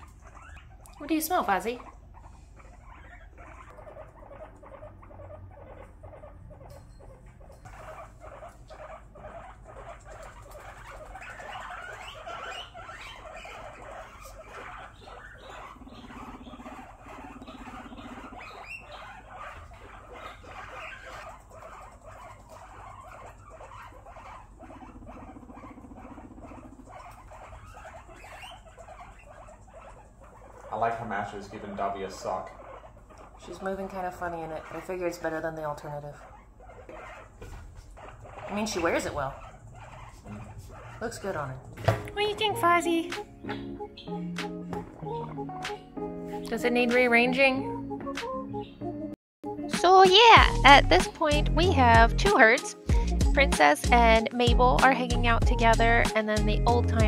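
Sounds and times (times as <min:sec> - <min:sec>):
guinea pig low buzzing rumble: 0:00.0 - 0:43.2, 0:49.8 - 0:57.0
guinea pigs chattering: 0:00.0 - 0:57.0.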